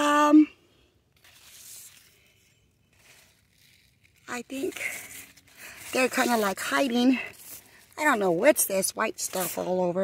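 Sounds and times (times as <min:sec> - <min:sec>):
faint rustle of leaves: 0:01.1 - 0:10.0.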